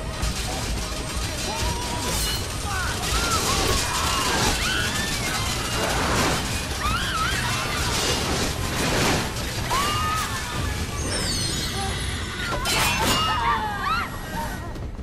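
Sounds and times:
crashing and shattering noise: 0:00.0 - 0:11.8
horror film music: 0:00.0 - 0:15.0
people screaming in panic: 0:01.5 - 0:08.6, 0:09.6 - 0:14.7.

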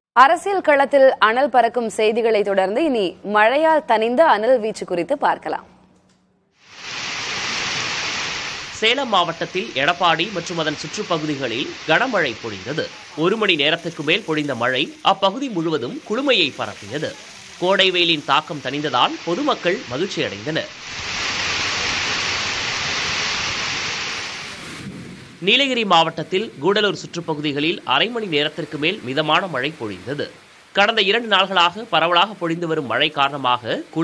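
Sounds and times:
heavy rain on road: 0:06.6 - 0:25.0.

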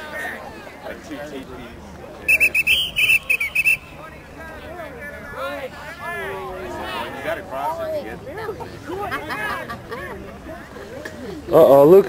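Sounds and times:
referee's whistle blasts: 0:02.3 - 0:04.0.

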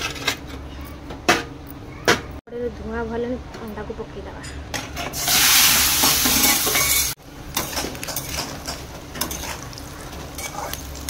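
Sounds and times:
hot oil sizzling: 0:05.1 - 0:11.0.

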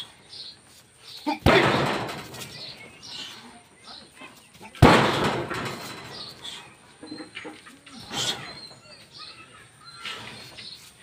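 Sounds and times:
hard kick strike: 0:01.4 - 0:02.6, 0:04.8 - 0:05.9
faint high bird chirps: 0:06.2 - 0:11.0.

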